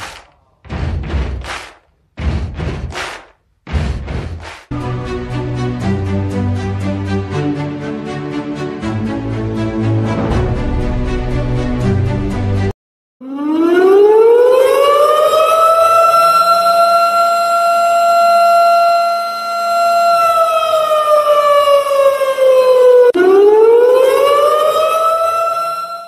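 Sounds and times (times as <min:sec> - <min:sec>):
siren wailing: 0:04.7 - 0:06.1, 0:13.2 - 0:26.0.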